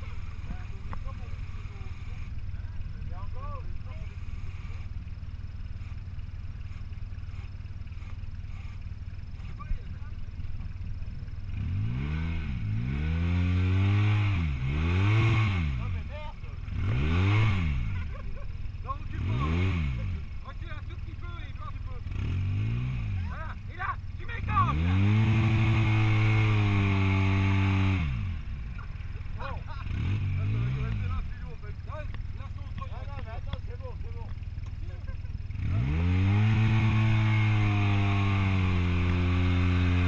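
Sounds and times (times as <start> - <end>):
engine revving: 0.0 - 40.0.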